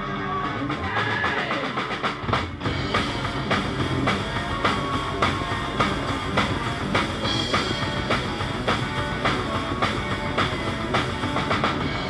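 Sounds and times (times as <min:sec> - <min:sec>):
rock band playing: 0:00.0 - 0:12.0
drum kit hits: 0:00.7 - 0:12.0.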